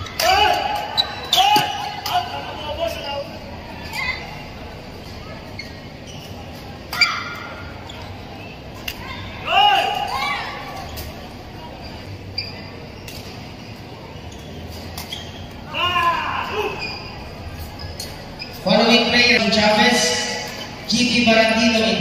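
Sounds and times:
crowd murmur: 0:00.0 - 0:18.8
shoe squeaks on court floor: 0:00.8 - 0:02.0, 0:05.0 - 0:08.6, 0:10.5 - 0:15.7, 0:16.6 - 0:19.0, 0:20.4 - 0:20.9.

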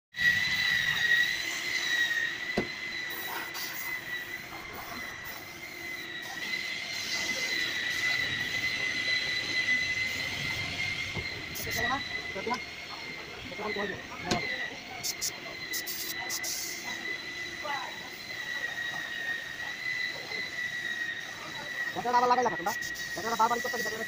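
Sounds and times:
compressed air whistling through spray gun: 0:00.1 - 0:24.0.

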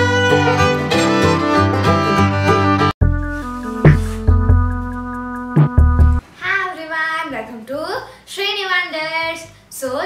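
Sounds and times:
bowed string tune: 0:00.0 - 0:04.9.

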